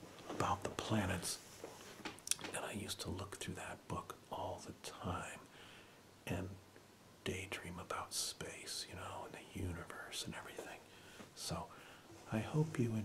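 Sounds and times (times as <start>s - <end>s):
man whispering: 0.3s - 1.5s, 2.3s - 5.5s, 6.2s - 6.6s, 7.2s - 13.0s.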